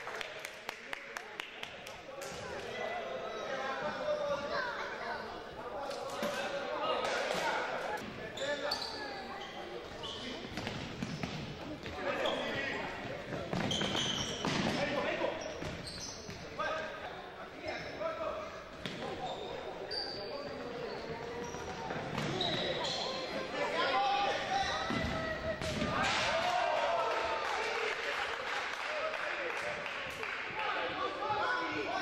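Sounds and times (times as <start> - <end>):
shoe squeaks: 8.3 - 11.4, 12.0 - 12.8, 13.5 - 14.6, 15.3 - 16.5, 19.0 - 23.6, 24.4 - 25.0.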